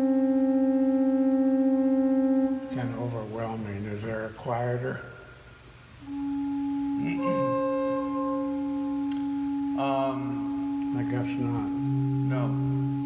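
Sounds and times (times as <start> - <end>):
pipe organ held notes: 0.0 - 13.0.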